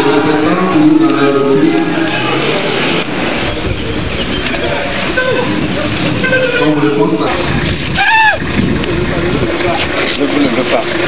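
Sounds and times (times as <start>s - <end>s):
crowd shouting: 0.0s - 3.4s, 7.9s - 8.5s.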